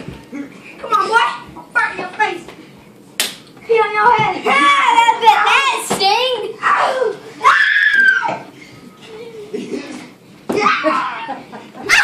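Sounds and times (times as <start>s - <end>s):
children shrieking and yelling: 6.4s - 8.5s, 10.5s - 12.0s.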